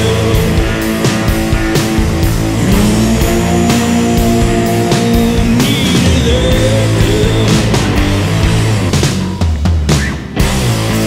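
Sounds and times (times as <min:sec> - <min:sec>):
bass and drums: 0:00.0 - 0:11.0
distorted electric guitars: 0:00.0 - 0:11.0.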